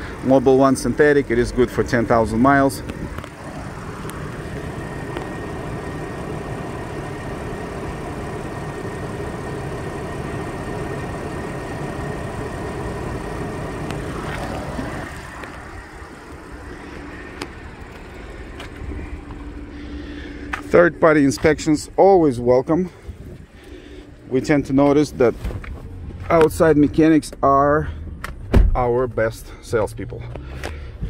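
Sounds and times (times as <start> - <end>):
car engine idling: 0.0 - 31.0.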